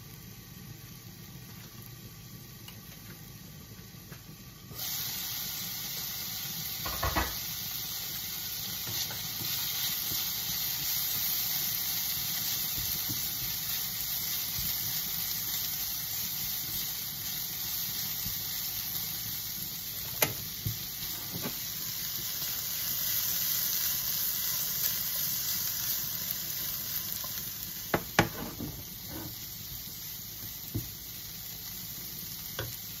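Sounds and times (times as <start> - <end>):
cabbage sizzling in a frying pan: 0.0 - 33.0
utensils knocking against pan: 6.8 - 7.4, 27.9 - 29.3.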